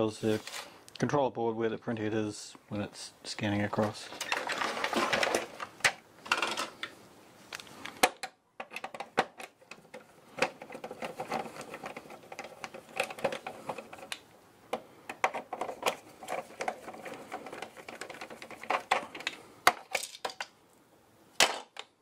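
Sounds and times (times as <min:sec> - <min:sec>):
screwdriver clicks and rattles: 0:07.5 - 0:20.5
plastic chassis knocking and clicking: 0:08.0 - 0:20.5.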